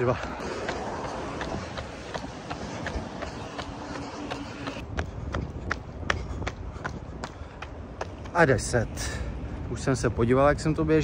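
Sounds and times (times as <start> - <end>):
jogger running footsteps: 0.0 - 8.5.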